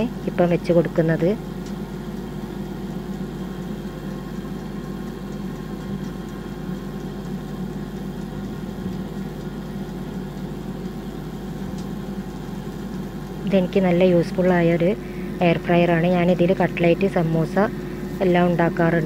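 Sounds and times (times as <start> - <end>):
air fryer fan humming: 0.0 - 19.0.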